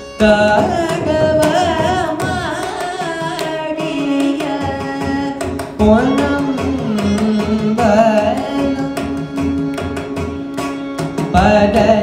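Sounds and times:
man singing gliding melody: 0.0s - 9.7s
hand drum strokes: 0.0s - 12.0s
violin: 0.0s - 12.0s.

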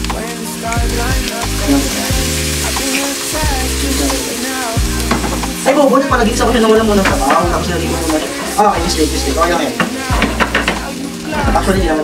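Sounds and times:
background music with bass beat: 0.0s - 12.0s
onion sizzling in a frying pan: 0.0s - 12.0s
spatula stirring in pan: 6.6s - 11.7s.

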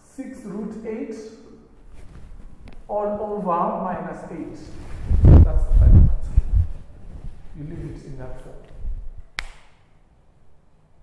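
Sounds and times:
sharp click: 9.4s - 9.8s.

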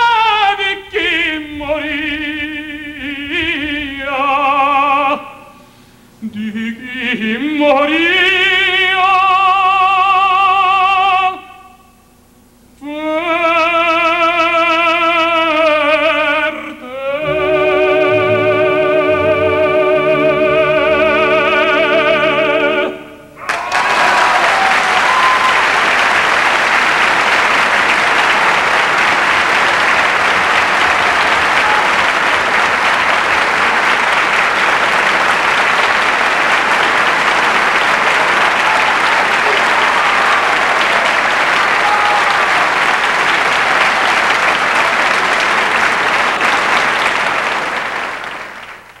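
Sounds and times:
singing: 0.0s - 5.6s, 6.2s - 12.0s, 12.8s - 25.6s
audience applauding: 23.4s - 49.0s.

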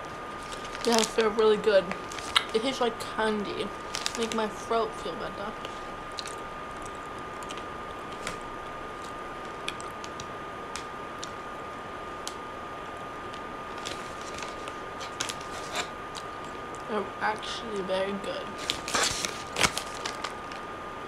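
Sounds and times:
microphone hiss: 0.0s - 21.0s.

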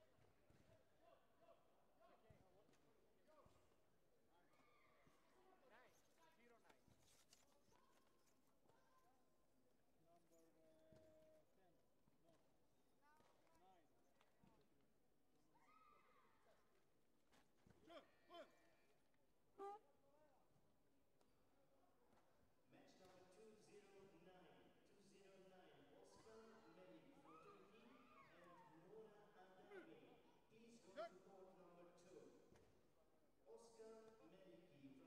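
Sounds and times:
person calling out: 19.6s - 19.8s.

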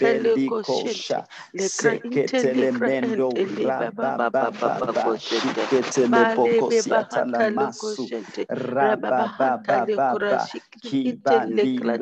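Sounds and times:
person praying aloud rapidly: 0.0s - 12.0s.

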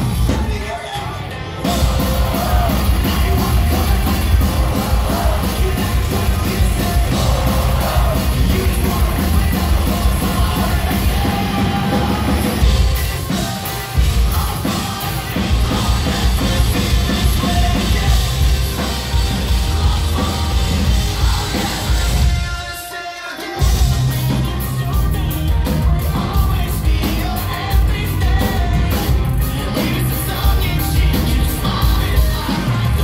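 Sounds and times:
live rock band playing loudly: 0.0s - 33.0s
sung and yelled vocals: 0.0s - 33.0s.

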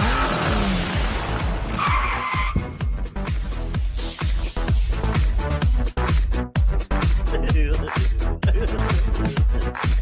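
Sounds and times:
electronic dance music: 2.6s - 10.0s.

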